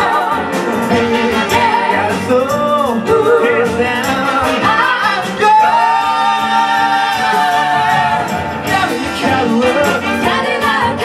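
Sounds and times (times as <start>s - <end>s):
women singing in harmony: 0.0s - 2.2s, 4.5s - 11.0s
soul band playing: 0.0s - 11.0s.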